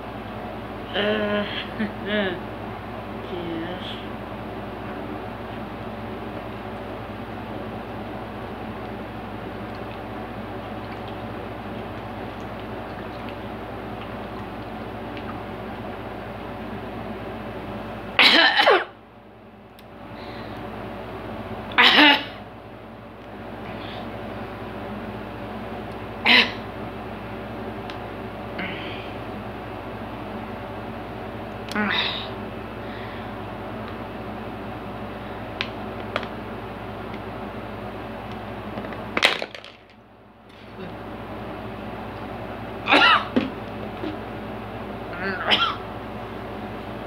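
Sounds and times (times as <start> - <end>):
steady low hum: 0.0 - 47.0
person coughing: 18.2 - 18.9, 21.8 - 22.4, 26.3 - 26.6, 42.9 - 43.4, 45.2 - 45.8.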